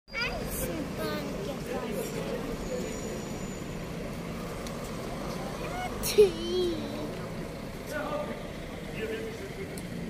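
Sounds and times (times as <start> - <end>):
cars and buses passing: 0.1 - 10.0
faint voices of passers-by: 0.1 - 10.0.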